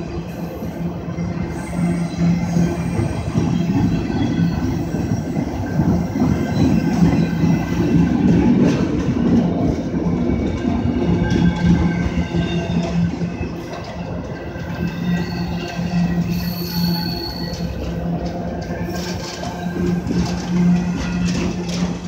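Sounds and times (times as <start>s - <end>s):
freight train wheels clattering: 0.0s - 22.0s
high wheel squeal: 14.6s - 17.9s.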